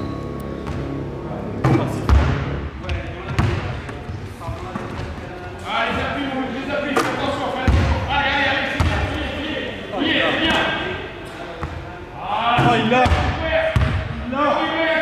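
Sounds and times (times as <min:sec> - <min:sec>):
voices in a hall: 0:00.0 - 0:15.0.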